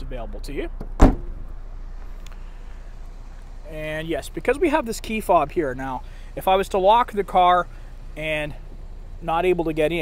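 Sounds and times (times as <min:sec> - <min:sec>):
faint background noise: 0:00.0 - 0:10.0
car trunk lid slamming: 0:00.8 - 0:01.6.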